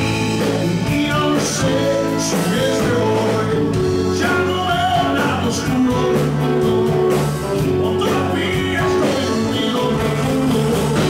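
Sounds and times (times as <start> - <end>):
lead singer's voice: 0.0 - 11.0
live rock band playing: 0.0 - 11.0.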